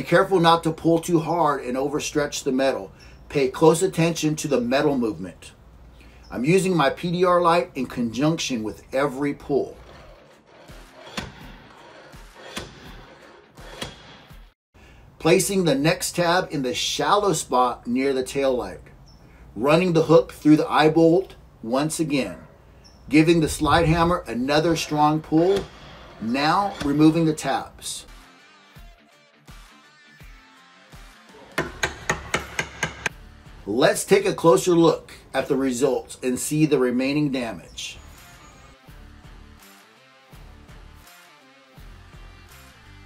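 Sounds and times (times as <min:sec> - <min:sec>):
slide hammer knocking: 0:10.5 - 0:14.1, 0:31.5 - 0:33.1
small hammer tapping: 0:31.6 - 0:33.1.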